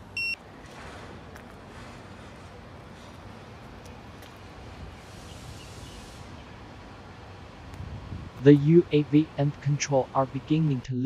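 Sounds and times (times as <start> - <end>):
steady low background noise: 0.0 - 11.0
short high alarm beep: 0.1 - 0.4.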